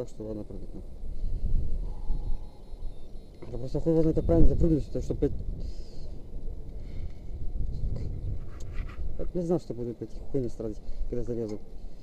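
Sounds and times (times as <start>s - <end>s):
wind buffeting microphone: 0.8s - 11.8s.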